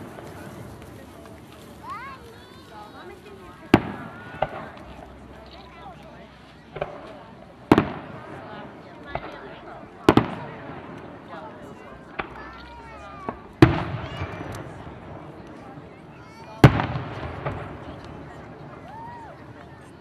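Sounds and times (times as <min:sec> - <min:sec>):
small firework pops: 0:00.0 - 0:02.7, 0:03.6 - 0:05.7, 0:06.7 - 0:09.5, 0:10.1 - 0:11.2, 0:12.1 - 0:15.7, 0:16.4 - 0:19.8
firework shells booming: 0:03.7 - 0:05.0, 0:06.7 - 0:09.4, 0:10.1 - 0:11.3, 0:13.3 - 0:15.5, 0:16.6 - 0:18.5.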